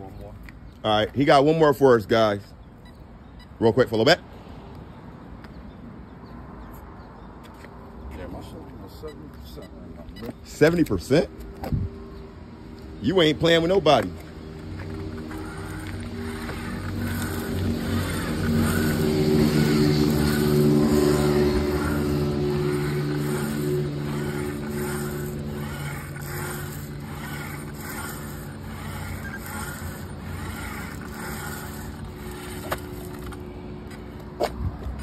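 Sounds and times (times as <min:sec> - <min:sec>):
vehicle engine running: 0:14.2 - 0:34.0.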